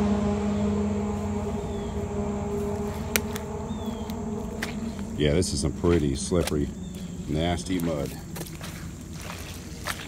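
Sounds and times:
traffic rumble: 0:00.0 - 0:10.0
vehicle passing: 0:00.0 - 0:10.0.

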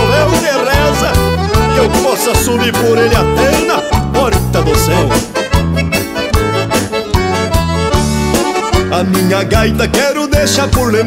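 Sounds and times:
button accordion dance music: 0:00.0 - 0:11.0
steady beat: 0:00.0 - 0:11.0.

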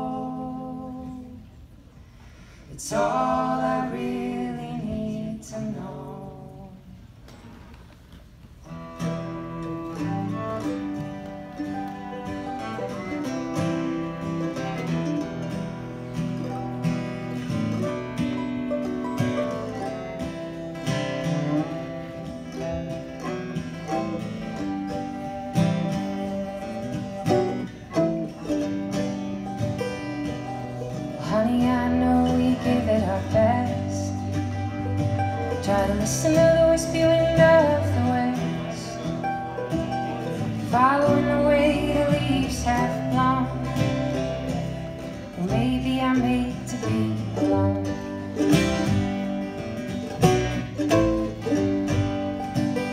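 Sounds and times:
a cappella vocal harmony: 0:00.0 - 0:01.4, 0:02.7 - 0:06.8
upright bass: 0:00.0 - 0:01.5, 0:02.7 - 0:06.9, 0:08.6 - 0:52.9
acoustic string band playing: 0:00.0 - 0:52.9
mandolin: 0:00.0 - 0:52.9.

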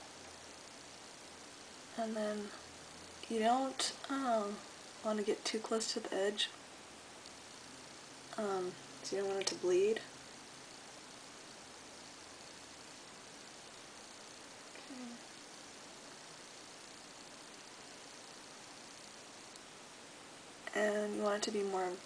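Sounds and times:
recording hiss: 0:00.0 - 0:22.0
person humming: 0:14.8 - 0:15.3.

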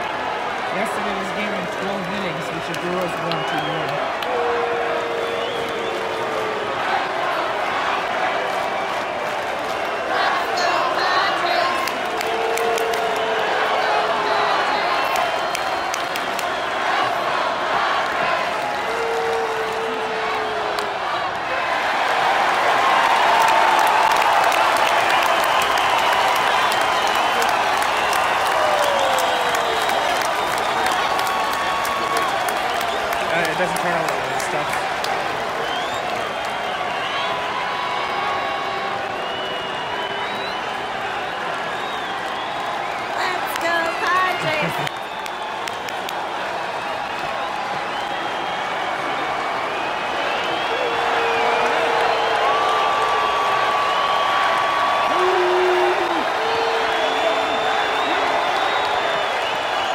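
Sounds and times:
scattered clapping: 0:00.0 - 0:21.1, 0:21.8 - 0:59.9
crowd cheering: 0:00.0 - 0:59.9
crowd voices: 0:00.0 - 0:59.9.

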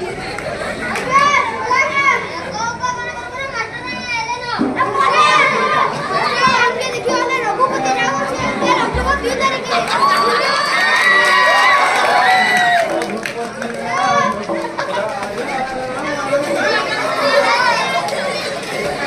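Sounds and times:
children shouting: 0:00.0 - 0:19.0
crowd noise: 0:00.0 - 0:19.0
short low thump: 0:08.4 - 0:09.5.

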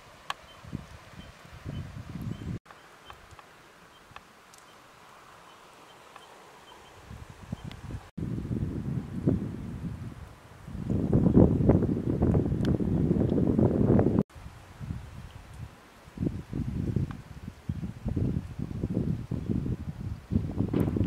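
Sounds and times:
wind buffeting microphone: 0:00.5 - 0:02.6, 0:06.9 - 0:21.0.

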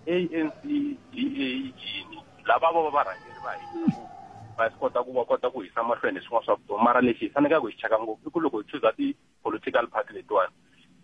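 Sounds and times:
person talking over telephone: 0:00.1 - 0:04.0, 0:04.6 - 0:10.5.

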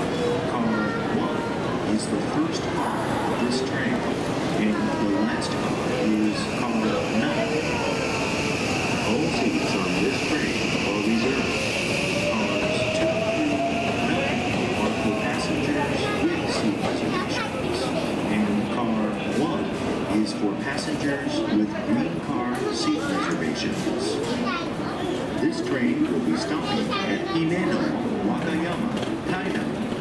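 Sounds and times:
murmur of voices: 0:00.0 - 0:30.0.

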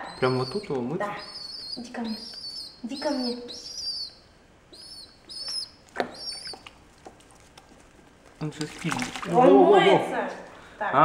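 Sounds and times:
bird chick cheeping: 0:00.0 - 0:06.7.

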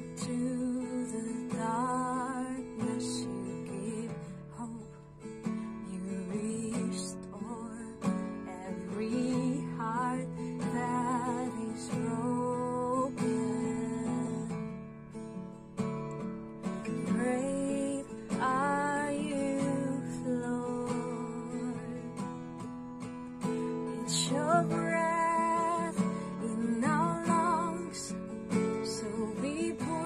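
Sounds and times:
acoustic guitar strumming: 0:00.0 - 0:30.0.

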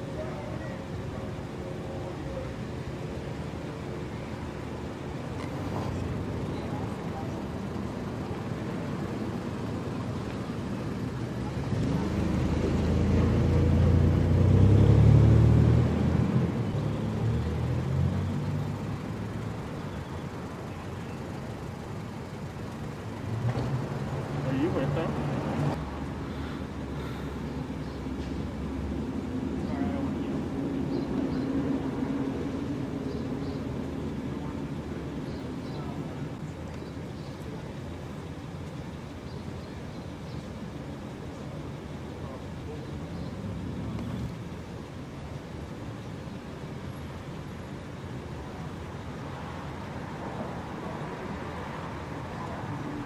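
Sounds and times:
engine rumble: 0:00.0 - 0:53.0
street traffic: 0:00.0 - 0:53.0
vehicle passing close: 0:05.4 - 0:35.0.

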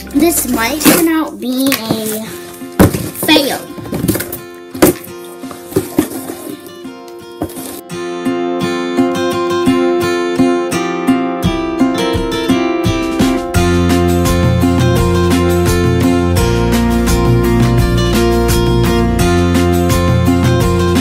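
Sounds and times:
acoustic guitar music: 0:00.0 - 0:21.0
cardboard rustling: 0:00.3 - 0:07.8.

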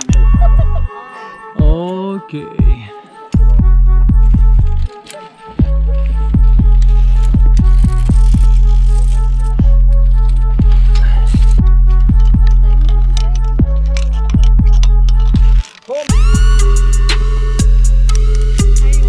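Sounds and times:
deep sustained bass: 0:00.0 - 0:00.9, 0:03.4 - 0:04.9, 0:05.6 - 0:19.0
sharp percussion hits: 0:00.0 - 0:04.8, 0:16.1 - 0:19.0.

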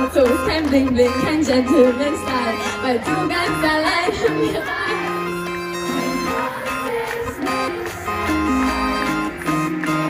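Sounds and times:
live pop band music: 0:00.0 - 0:10.0.

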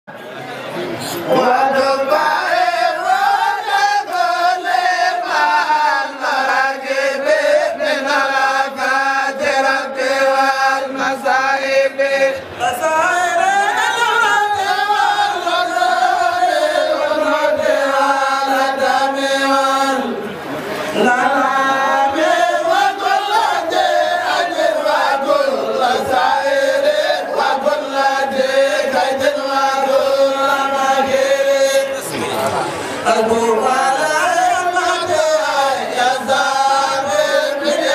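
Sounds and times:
voices chanting: 0:01.1 - 0:37.9.

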